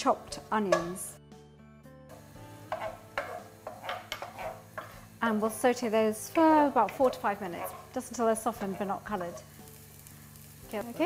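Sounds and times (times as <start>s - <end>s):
onions sizzling in a frying pan: 2.1s - 11.0s
wooden spoon scraping and knocking pan: 2.7s - 5.2s, 6.3s - 9.5s.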